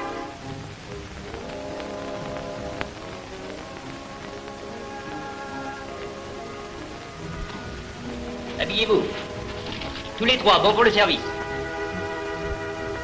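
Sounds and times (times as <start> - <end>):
film score with held notes: 0.0 - 13.0
film soundtrack hiss and crackle: 0.0 - 13.0.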